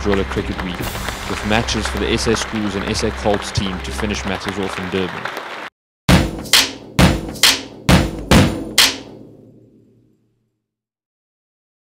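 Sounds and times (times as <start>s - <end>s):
sharp percussive hits: 0.6s - 4.0s, 6.1s - 9.3s.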